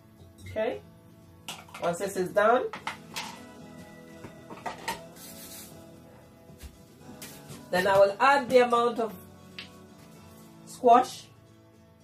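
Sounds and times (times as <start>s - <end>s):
background music of held tones: 0.0s - 12.0s
utensils knocking on counter: 1.5s - 1.9s, 4.5s - 5.0s.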